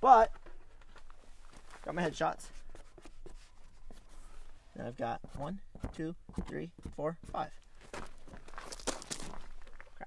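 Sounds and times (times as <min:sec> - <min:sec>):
footsteps shuffling on gravel: 0:00.8 - 0:02.4, 0:07.5 - 0:10.0.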